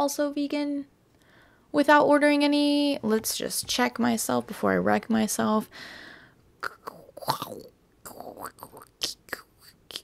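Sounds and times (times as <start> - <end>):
mouth noises: 6.6 - 10.0.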